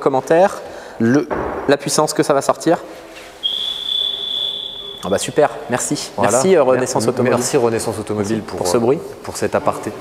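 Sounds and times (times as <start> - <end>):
high-pitched electronic beep: 3.5 - 5.4.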